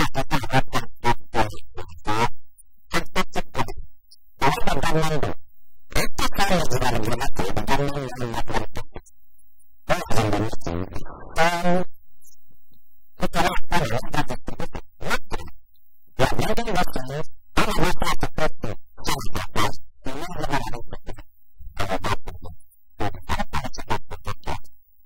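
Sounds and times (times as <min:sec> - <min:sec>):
man speaking: 0:00.0 - 0:02.3, 0:02.9 - 0:03.8, 0:04.4 - 0:09.0, 0:09.9 - 0:11.9, 0:13.2 - 0:15.5, 0:16.2 - 0:24.7
man's garbled voice: 0:00.0 - 0:02.3, 0:02.9 - 0:03.8, 0:04.4 - 0:09.0, 0:09.9 - 0:11.9, 0:13.2 - 0:15.5, 0:16.2 - 0:21.2, 0:21.8 - 0:24.7.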